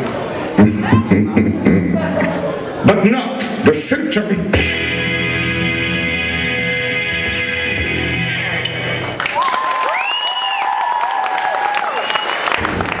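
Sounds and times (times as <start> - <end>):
song music: 0.6 - 9.3
audience applause: 9.1 - 13.0
audience whooping: 9.1 - 13.0
audience whistling: 9.2 - 13.0.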